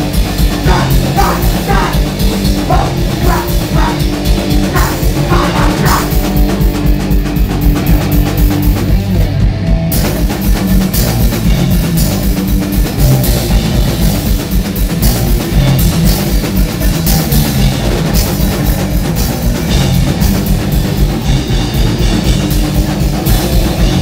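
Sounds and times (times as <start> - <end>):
bass guitar and guitar: 0.0 - 24.0
drum kit: 0.0 - 24.0.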